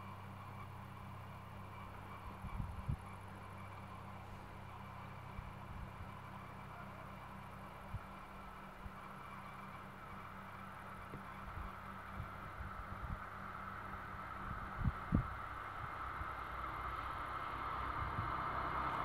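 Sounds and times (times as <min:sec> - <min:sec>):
distant electric locomotive hum: 0:00.0 - 0:19.0.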